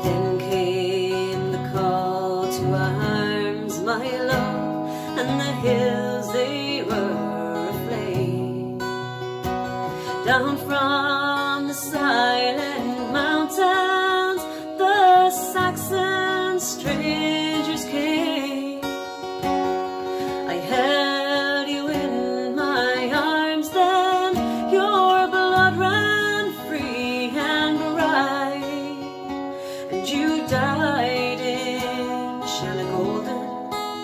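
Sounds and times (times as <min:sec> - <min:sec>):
strummed acoustic guitar: 0:00.0 - 0:34.0
woman singing a ballad: 0:00.0 - 0:34.0.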